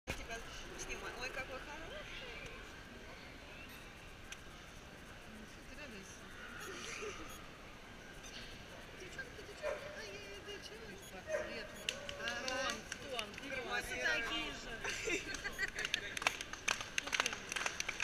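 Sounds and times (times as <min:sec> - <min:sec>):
background chatter: 0:00.1 - 0:18.0
people talking nearby: 0:00.1 - 0:18.0.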